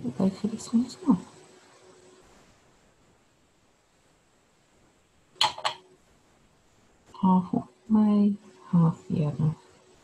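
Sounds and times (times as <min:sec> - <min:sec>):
paintbrush tapping on ceramic: 0:05.4 - 0:05.8.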